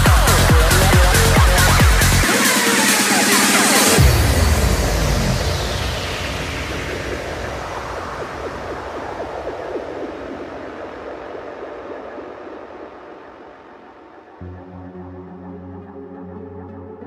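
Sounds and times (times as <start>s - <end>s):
white-noise sweep: 0.0s - 16.1s
faint flickering synth tones: 4.2s - 17.0s.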